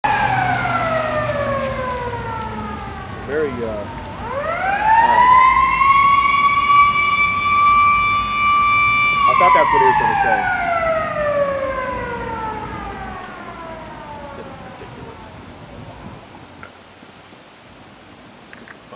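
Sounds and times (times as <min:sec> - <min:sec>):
air raid siren descending: 0:00.0 - 0:16.2.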